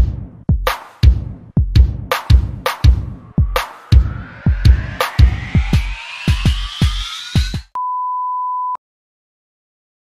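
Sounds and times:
electronic dance music: 0.7s - 7.8s.

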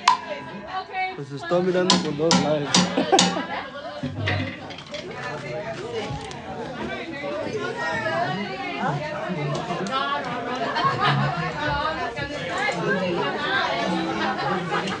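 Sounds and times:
people talking at once: 0.0s - 15.0s.

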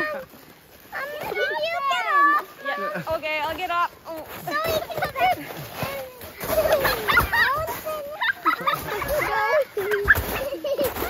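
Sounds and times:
children calling out: 0.0s - 3.1s, 4.4s - 11.0s
children laughing: 1.0s - 3.2s, 4.2s - 11.0s.

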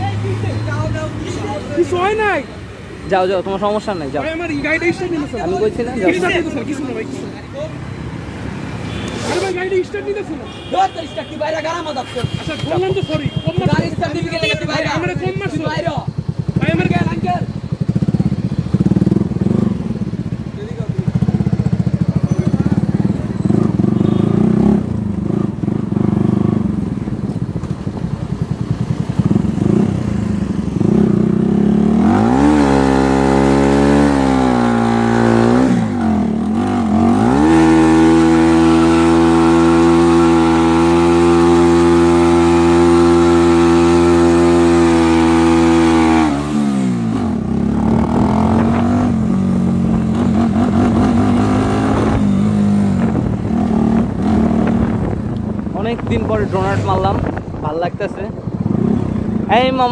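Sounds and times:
motorcycle engine revving: 11.9s - 59.9s.

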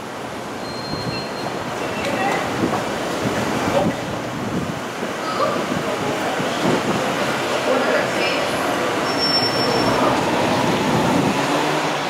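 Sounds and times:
faint high squeal: 0.6s - 1.5s, 9.0s - 10.1s
car engine pulling away: 8.8s - 12.0s.

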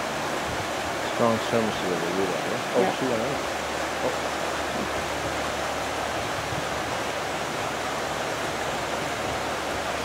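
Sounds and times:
river rapids rushing: 0.0s - 10.0s.

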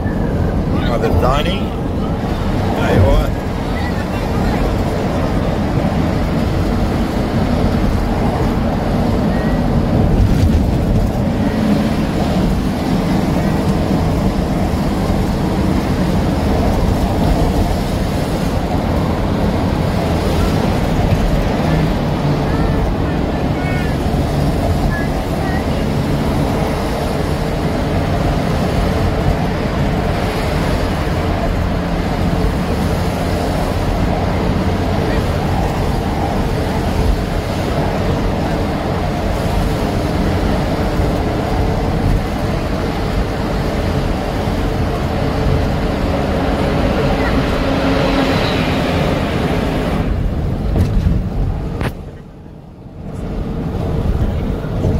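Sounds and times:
car engine and tyres rumbling: 0.0s - 54.9s.

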